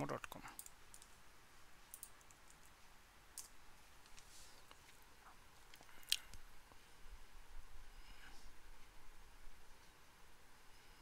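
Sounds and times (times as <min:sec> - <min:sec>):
computer keyboard clicks: 0:01.9 - 0:02.6.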